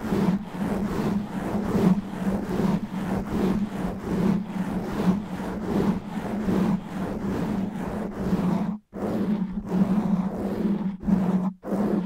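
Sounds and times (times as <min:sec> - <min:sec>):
fingernails scratching microphone windscreen: 0:00.0 - 0:12.0.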